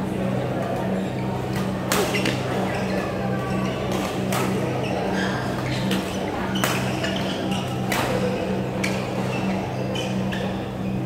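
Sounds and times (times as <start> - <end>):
racket striking shuttlecock: 1.6 - 2.4.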